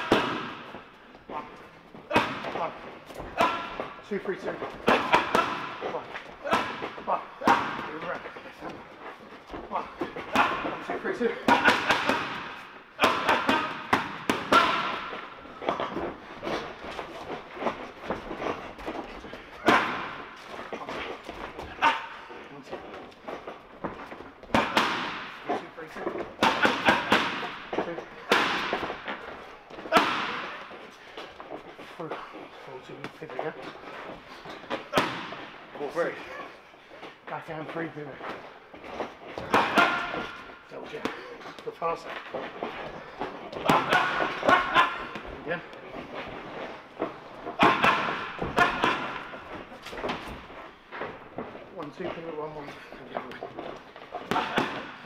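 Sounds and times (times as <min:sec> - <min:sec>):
boxing gloves hitting pads: 0:00.0 - 0:08.8, 0:09.5 - 0:31.7, 0:32.8 - 0:36.3, 0:38.3 - 0:55.0.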